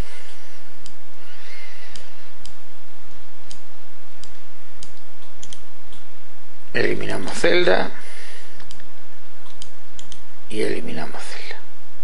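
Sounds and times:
steady background hiss: 0:00.0 - 0:12.0
computer mouse clicking: 0:00.8 - 0:01.0, 0:01.9 - 0:06.1, 0:08.6 - 0:10.3.

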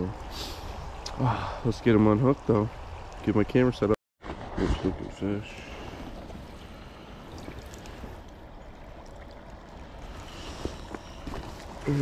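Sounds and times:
creek water running: 0:00.0 - 0:12.0
light water splashes: 0:00.0 - 0:12.0.

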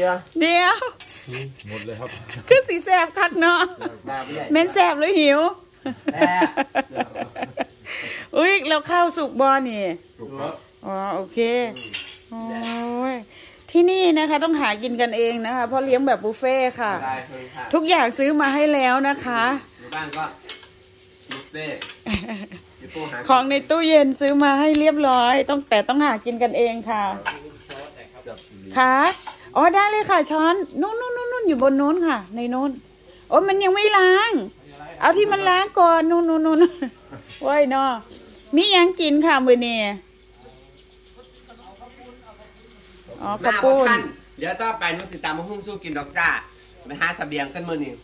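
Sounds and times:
cutlery clinking on plates: 0:11.8 - 0:12.8.

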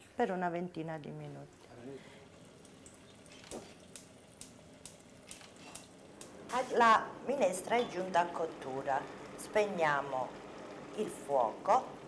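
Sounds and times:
soup simmering: 0:01.7 - 0:12.0
small pops and clicks: 0:02.6 - 0:06.4.

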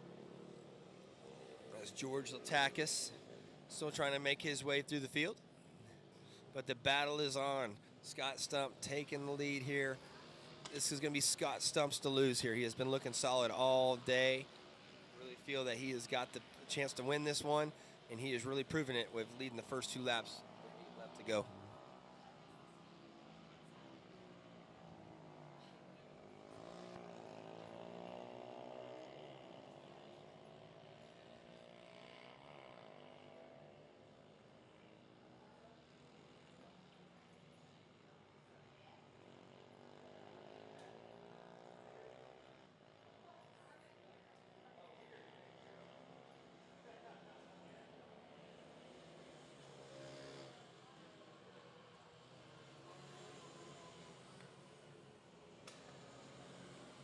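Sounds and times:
racing motorcycle engines passing: 0:00.0 - 0:57.0.

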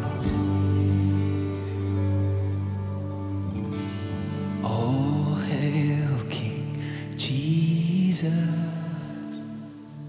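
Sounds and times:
acoustic guitar: 0:00.0 - 0:10.0
man singing wordless melody: 0:04.6 - 0:10.0.

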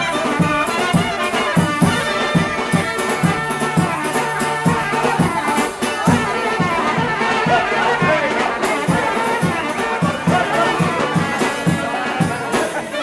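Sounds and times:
steady drum beat: 0:00.0 - 0:13.0
wind instrument melody: 0:00.0 - 0:13.0.

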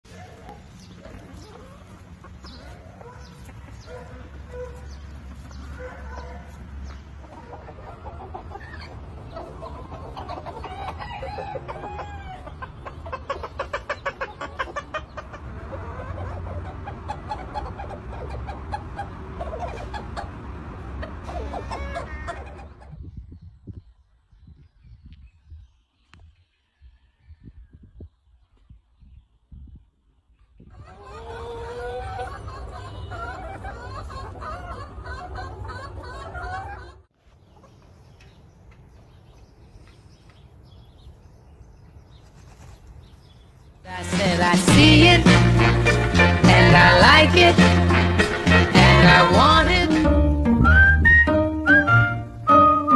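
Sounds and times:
chickens clucking and calling: 0:00.1 - 0:23.8, 0:26.6 - 0:50.1
rooster crowing: 0:10.7 - 0:12.5.

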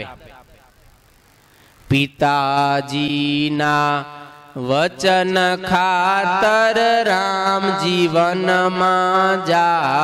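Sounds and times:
man singing chant-like melody: 0:01.9 - 0:10.0.

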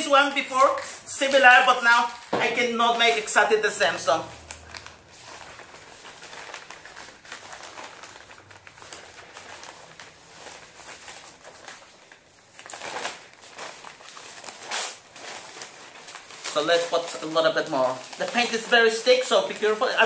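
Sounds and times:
newspaper rustling and crinkling: 0:00.0 - 0:20.0.

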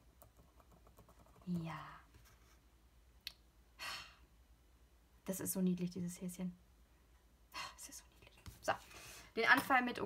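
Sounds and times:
woman sighing: 0:03.8 - 0:04.2.

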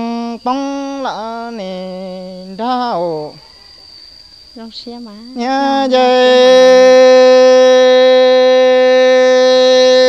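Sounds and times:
person singing poetry: 0:00.0 - 0:03.4, 0:04.6 - 0:10.0
instrumental drone: 0:05.4 - 0:10.0.

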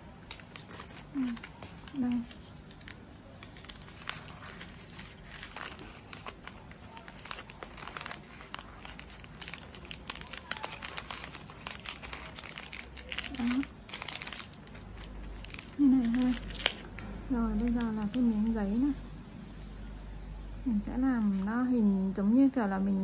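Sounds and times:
wrapping paper crinkling: 0:00.0 - 0:18.6.

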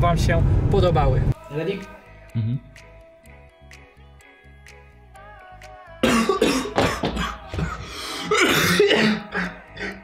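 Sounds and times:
man clearing throat: 0:06.0 - 0:07.4, 0:08.2 - 0:10.0
man coughing: 0:06.0 - 0:10.0.

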